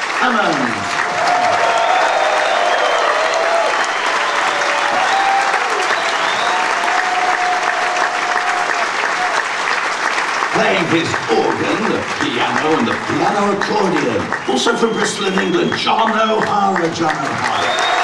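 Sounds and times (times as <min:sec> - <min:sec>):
audience clapping: 0:00.0 - 0:18.0
long held shouts: 0:01.2 - 0:09.4.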